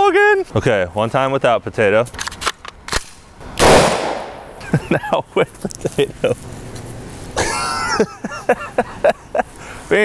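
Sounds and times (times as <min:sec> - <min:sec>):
person laughing: 0:04.5 - 0:06.4, 0:07.4 - 0:09.6.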